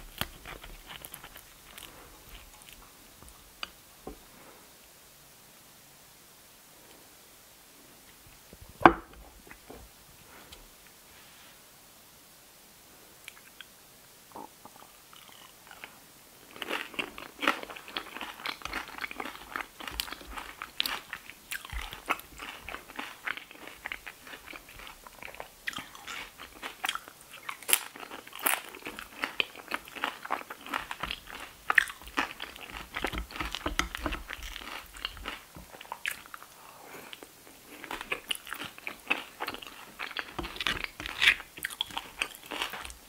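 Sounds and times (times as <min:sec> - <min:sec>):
crunching tortilla chips: 0:00.0 - 0:02.9, 0:15.2 - 0:36.5, 0:37.2 - 0:43.0.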